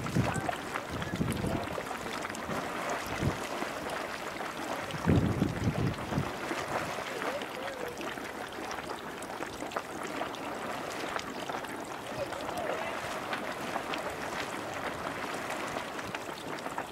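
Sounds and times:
geyser water churning and splashing: 0.0s - 16.9s.

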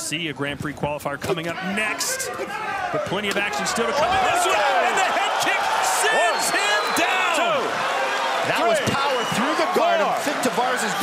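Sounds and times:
men shouting excitedly: 1.6s - 11.0s.

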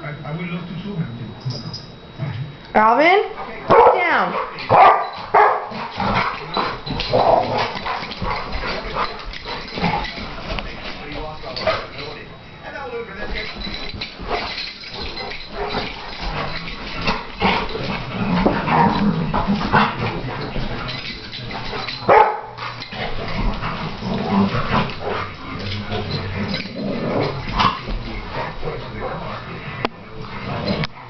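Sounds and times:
dogs play-fighting: 1.3s - 31.0s
dogs barking: 3.4s - 9.7s, 21.4s - 23.0s.

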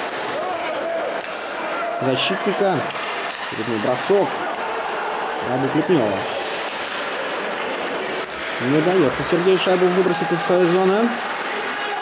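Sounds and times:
ice rink ambience: 0.0s - 12.0s.

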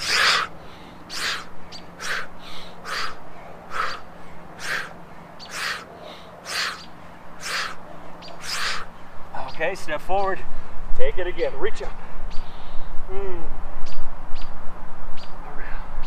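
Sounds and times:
man's sharp breathy exhales: 0.0s - 6.8s, 7.4s - 7.8s.

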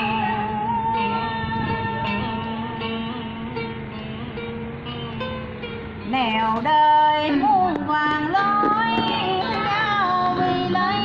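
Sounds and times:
woman singing: 0.0s - 3.8s, 6.1s - 11.0s
soft guitar accompaniment: 0.0s - 11.0s.

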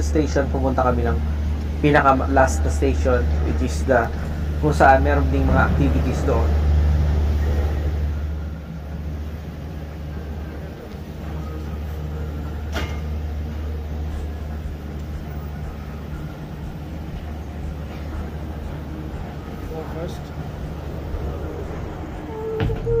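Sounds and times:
gondola lift machinery humming: 0.0s - 23.0s.

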